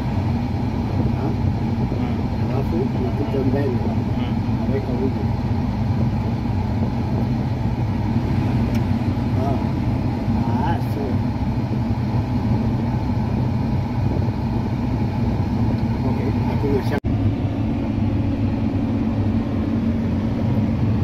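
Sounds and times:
combine harvester engine drone: 0.0 - 21.0.

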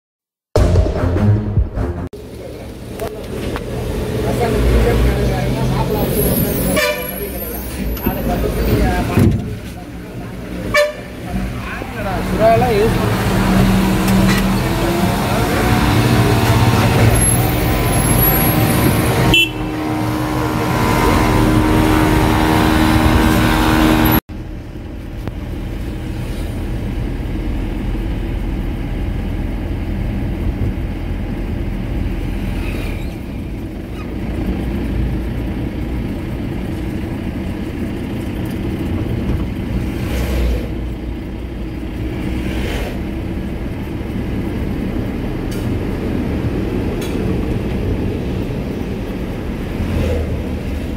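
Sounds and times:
road traffic: 0.6 - 50.9
vehicle engine and road rumble: 0.6 - 50.9.

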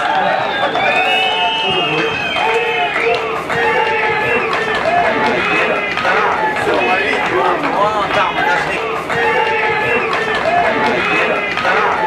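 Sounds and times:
voices shouting: 0.0 - 12.0.

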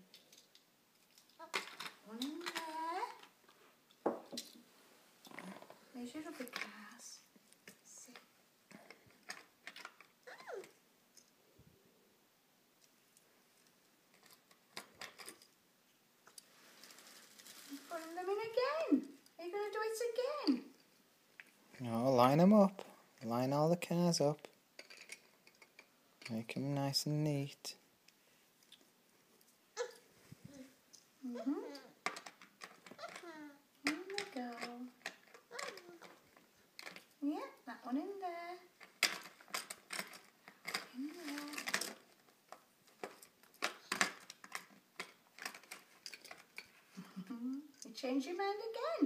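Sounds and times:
toy cars clicking together: 0.0 - 3.3, 8.1 - 11.3, 14.1 - 15.5, 24.8 - 25.9, 31.7 - 37.2, 38.8 - 46.7
toddler babbling: 29.8 - 32.0, 33.0 - 33.7.

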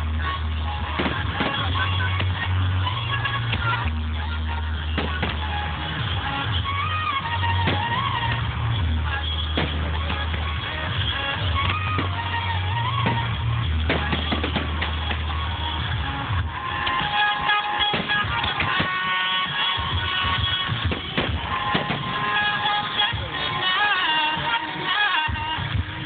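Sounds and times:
loud bass-heavy music over loudspeakers: 0.0 - 26.0
firework shells bursting: 5.0 - 5.7, 7.5 - 8.6, 9.5 - 15.8, 16.8 - 23.1.

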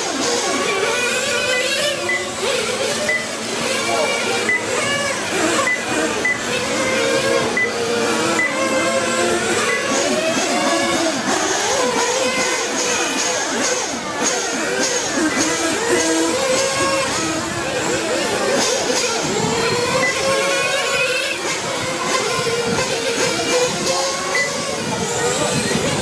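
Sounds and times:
toy motorcycle motors whining: 0.0 - 26.0.

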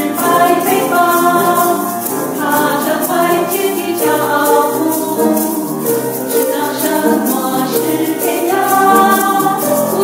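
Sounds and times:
hand shakers shaken: 0.0 - 10.0
mixed choir singing: 0.0 - 10.0.

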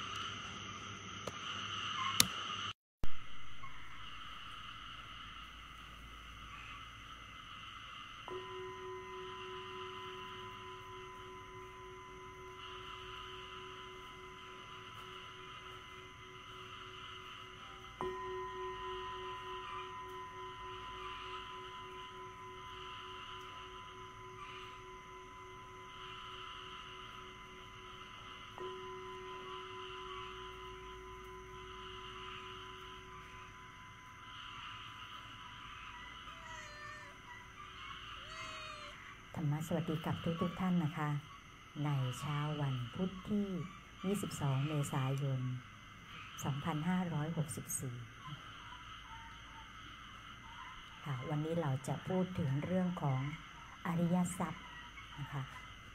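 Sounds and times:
bell ringing: 8.3 - 34.4.

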